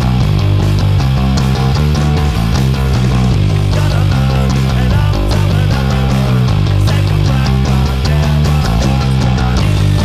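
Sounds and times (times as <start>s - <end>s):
electric bass notes: 0.0s - 10.0s
punk rock band: 0.0s - 10.0s.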